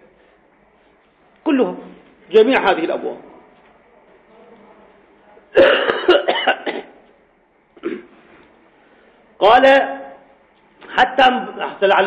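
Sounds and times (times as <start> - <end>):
man coughing: 5.6 - 7.0.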